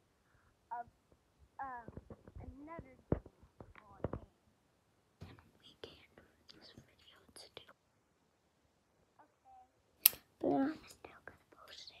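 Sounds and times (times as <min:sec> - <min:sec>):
soft whispering: 0:05.2 - 0:07.8, 0:10.4 - 0:12.0.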